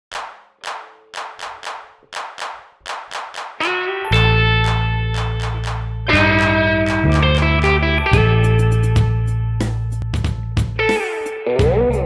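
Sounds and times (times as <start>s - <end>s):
hand claps: 0.1s - 9.1s.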